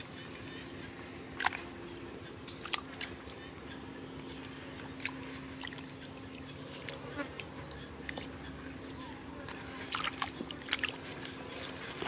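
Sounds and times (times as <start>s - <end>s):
low buzzing hum: 0.0s - 12.0s
hands squelching through wet mud: 1.2s - 3.5s, 4.3s - 12.0s.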